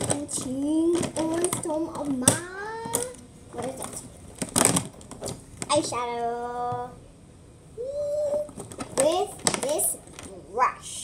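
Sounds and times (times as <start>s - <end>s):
child speaking: 0.0s - 4.1s, 5.7s - 7.0s, 7.8s - 11.0s
child humming: 7.8s - 8.5s.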